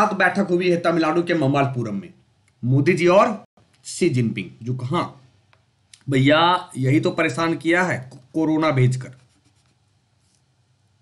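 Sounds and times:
man speaking: 0.0 - 5.3, 6.0 - 9.3
stylus scratching on tablet: 8.9 - 10.6.

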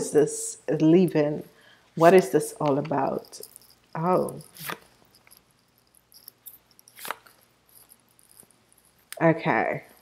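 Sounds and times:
card deck being handled: 4.2 - 5.0, 6.5 - 7.4.

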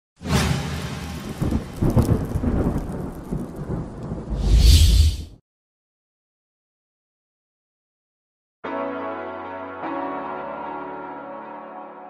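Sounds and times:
crackling thunder rumble: 1.0 - 5.3.

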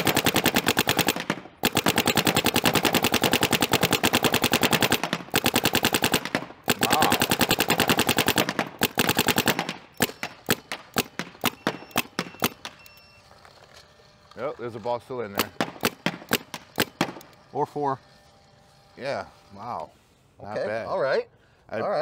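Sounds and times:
paintball marker firing shots: 0.0 - 12.8, 15.3 - 17.3.

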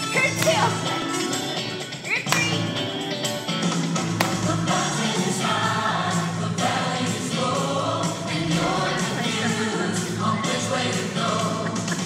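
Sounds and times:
rock backing music: 0.0 - 12.0
choir singing: 4.2 - 12.0.

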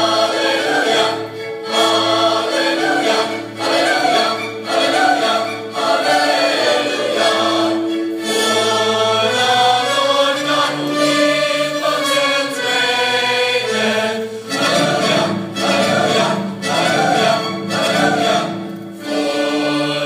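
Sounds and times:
choir singing held notes: 0.0 - 20.0.

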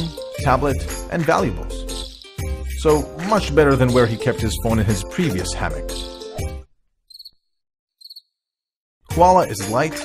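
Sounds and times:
faint cricket chirps: 7.1 - 7.4, 8.0 - 8.4.

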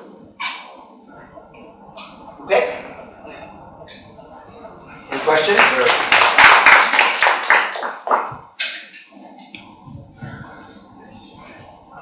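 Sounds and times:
audience applauding: 5.1 - 8.6.

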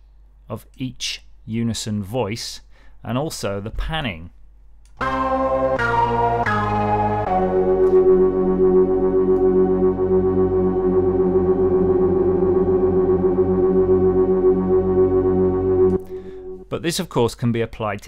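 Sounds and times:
detuned sawtooth synthesizer note: 5.0 - 16.8.

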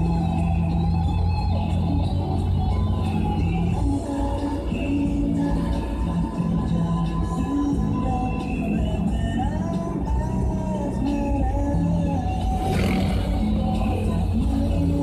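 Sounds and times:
low rumble of moving car: 0.0 - 15.0
music from car radio: 0.0 - 15.0.

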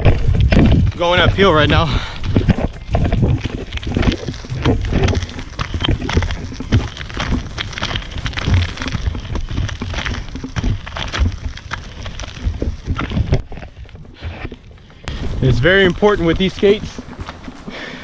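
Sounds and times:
inline skates rolling over gravel: 0.0 - 18.0.

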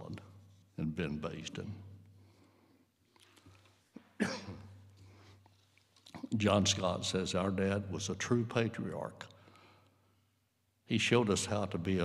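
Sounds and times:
man coughing: 4.0 - 4.8.

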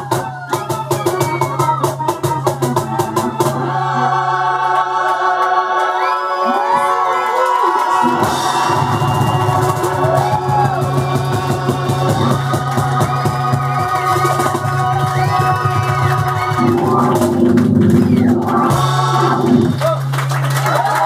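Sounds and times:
audience clapping along: 2.5 - 21.0
low bass note: 16.6 - 20.0.

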